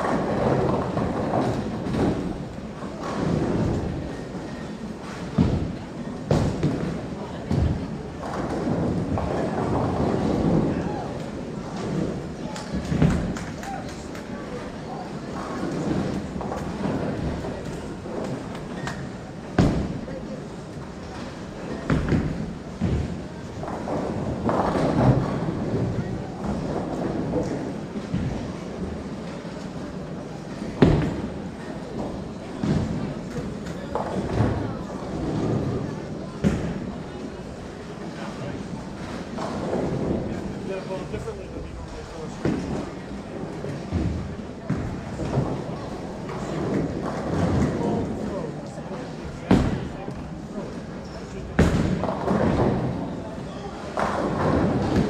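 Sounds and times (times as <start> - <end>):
bowling balls rolling: 0.0 - 55.0
bowling balls striking pins: 53.8 - 55.0.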